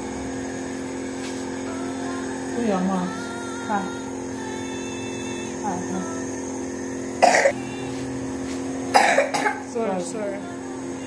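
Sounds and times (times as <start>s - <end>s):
steady hum: 0.0s - 11.0s
child coughing: 7.2s - 7.6s, 8.9s - 9.7s.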